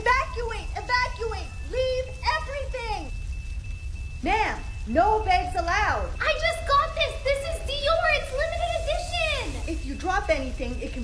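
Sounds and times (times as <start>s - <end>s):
woman shouting: 0.0s - 3.1s
low hum: 0.0s - 11.0s.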